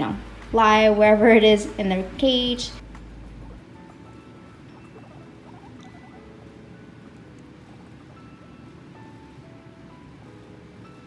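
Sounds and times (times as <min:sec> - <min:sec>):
soft background music: 0:00.0 - 0:11.0
guinea pigs squeaking: 0:02.2 - 0:09.4.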